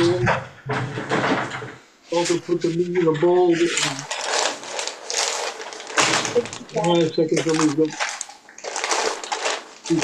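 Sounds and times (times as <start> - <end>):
rustling and clattering: 0.0 - 10.0.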